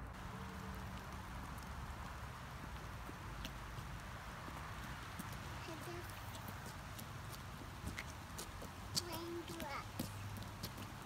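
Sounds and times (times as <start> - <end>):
light rain hiss: 0.0 - 11.0
rubber boots tapping on wet asphalt: 0.2 - 11.0.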